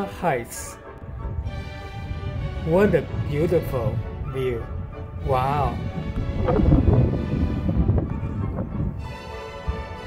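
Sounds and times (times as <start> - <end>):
background music: 0.0 - 10.0
wind buffeting microphone: 0.0 - 10.0.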